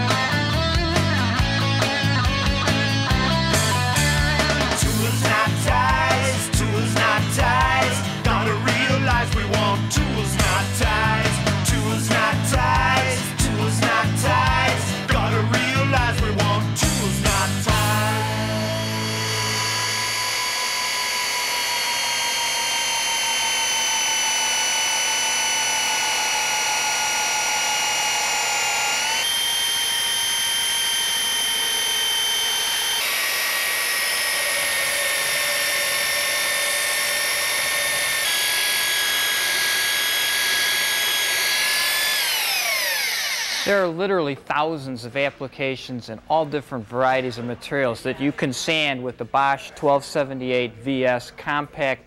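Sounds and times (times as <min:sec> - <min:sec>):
belt sander motor whine: 0:17.8 - 0:43.8.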